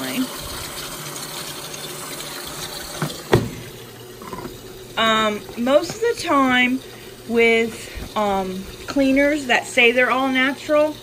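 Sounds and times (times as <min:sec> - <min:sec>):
liquid detergent pouring: 0:00.0 - 0:11.0
quick knocks: 0:03.0 - 0:04.6.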